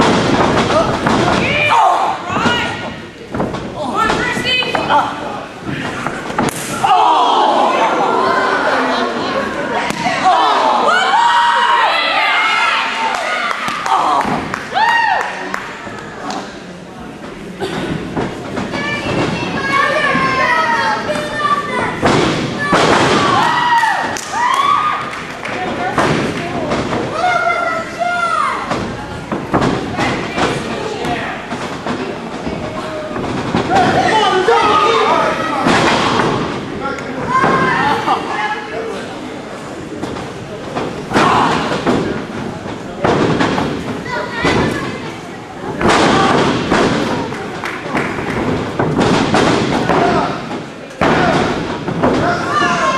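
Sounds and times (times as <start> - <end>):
people yelling: 0.7 - 2.8, 6.6 - 15.4, 22.6 - 25.1, 33.7 - 36.2, 52.2 - 52.9
raised voices: 3.8 - 15.2
bodies thumping on wrestling ring: 48.1 - 52.9.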